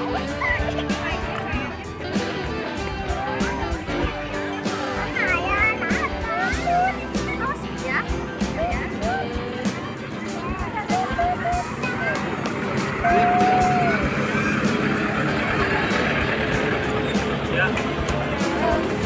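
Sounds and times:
crowd voices: 0.0s - 19.0s
music: 0.0s - 19.0s
children calling out: 2.2s - 16.2s
tram rolling past: 11.4s - 19.0s.

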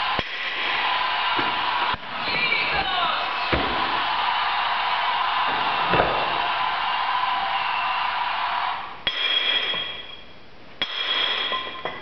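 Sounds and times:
hammer striking chisel on stone: 9.1s - 10.2s, 10.8s - 12.0s.

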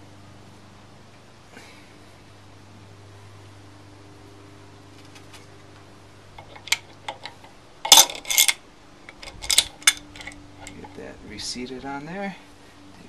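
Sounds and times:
wrench clanking on metal: 6.4s - 11.0s.

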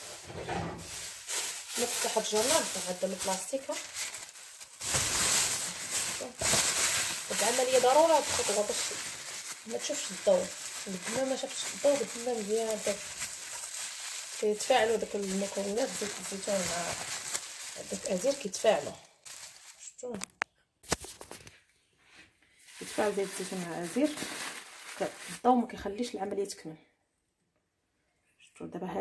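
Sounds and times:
plastic bag crinkling: 0.0s - 21.4s, 22.6s - 25.6s
woman talking: 1.7s - 3.9s, 6.0s - 6.6s, 7.2s - 13.1s, 14.3s - 19.1s, 19.8s - 20.3s, 22.8s - 24.4s, 25.0s - 26.8s, 28.6s - 29.0s.

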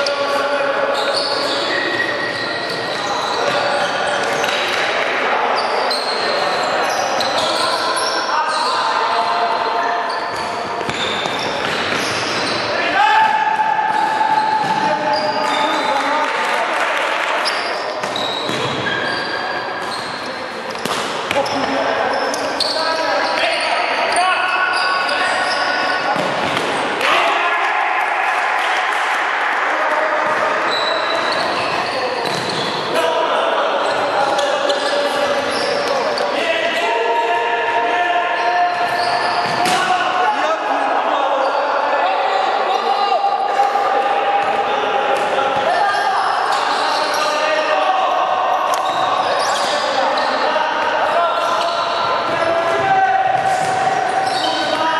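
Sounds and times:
shoes squeaking on court floor: 0.0s - 4.8s, 5.5s - 12.9s, 13.9s - 16.1s, 17.3s - 26.9s, 30.2s - 33.0s, 33.8s - 36.8s, 38.4s - 40.0s, 45.2s - 47.8s, 48.5s - 54.8s
players calling out: 0.0s - 54.9s.

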